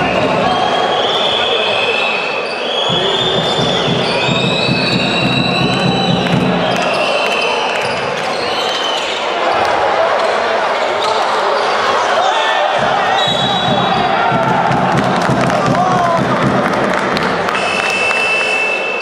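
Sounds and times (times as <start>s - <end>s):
crowd noise with shouting: 0.0s - 19.0s
basketball bouncing on court: 2.9s - 7.0s, 12.8s - 17.5s.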